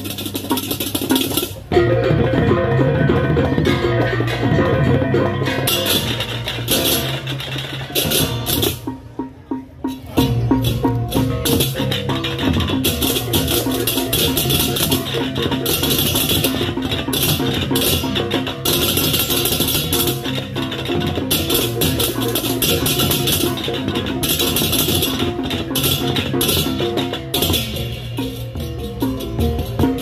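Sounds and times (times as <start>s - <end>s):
barrel drums: 0.0s - 30.0s.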